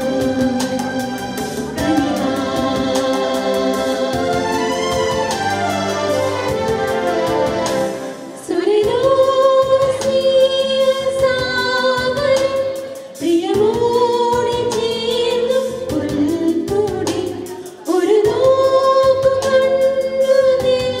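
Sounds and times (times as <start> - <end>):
two women singing: 1.8 - 5.5, 7.2 - 21.0.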